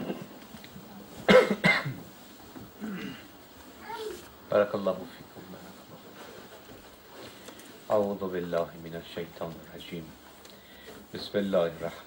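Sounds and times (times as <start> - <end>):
man coughing: 1.3 - 2.0, 2.8 - 3.3.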